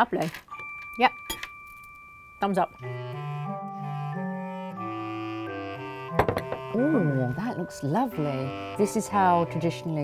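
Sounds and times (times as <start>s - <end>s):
woodwind-like melody over bass: 2.8s - 10.0s.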